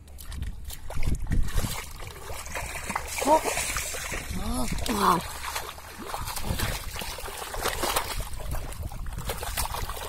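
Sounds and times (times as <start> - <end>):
bare feet wading: 0.0 - 10.0
muddy water splashing: 0.0 - 10.0.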